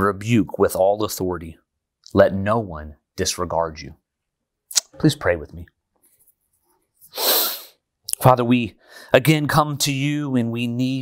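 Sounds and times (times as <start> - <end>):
man sneezing: 7.1 - 7.8.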